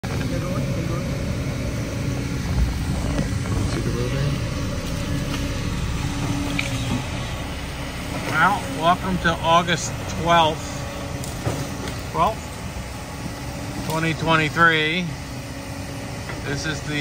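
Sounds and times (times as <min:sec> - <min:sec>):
excavator diesel engine running: 0:00.0 - 0:17.0.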